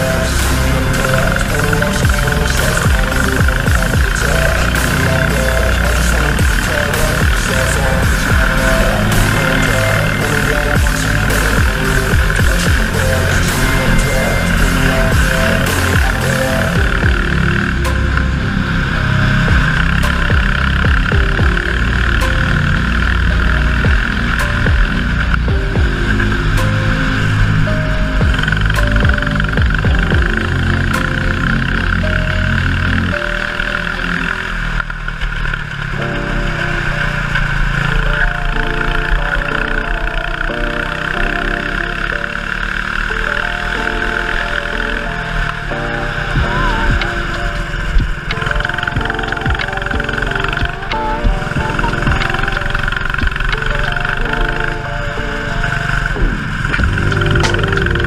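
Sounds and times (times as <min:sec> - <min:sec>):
background music with beat: 0:00.0 - 0:18.4, 0:19.2 - 0:33.6, 0:43.3 - 0:58.0.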